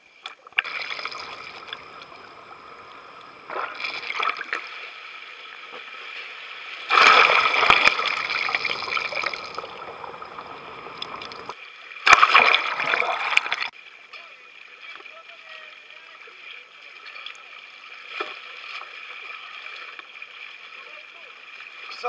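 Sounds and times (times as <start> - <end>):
faint water wash: 0.6 - 22.0
water rushing and splashing: 0.6 - 22.0.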